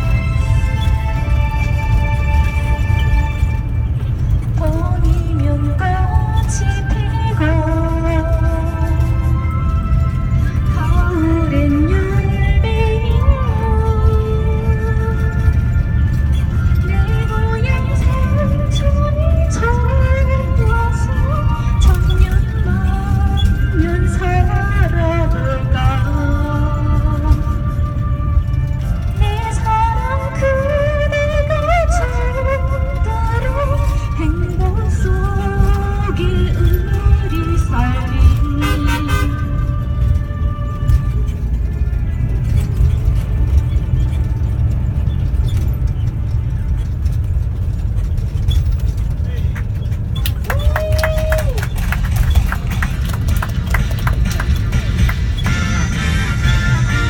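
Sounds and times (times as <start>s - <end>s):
vehicle rumble: 0.0s - 57.0s
woman singing: 4.6s - 9.5s, 10.7s - 15.4s, 16.8s - 27.9s, 29.2s - 39.8s.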